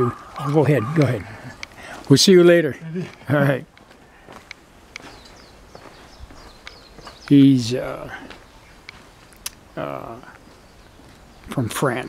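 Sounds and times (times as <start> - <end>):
footsteps on gravel: 0.0 - 9.4, 10.4 - 11.3.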